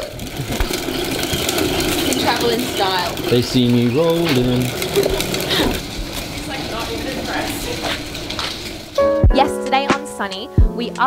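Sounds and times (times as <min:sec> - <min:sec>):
plastic wheels rattling on concrete: 0:00.0 - 0:10.4.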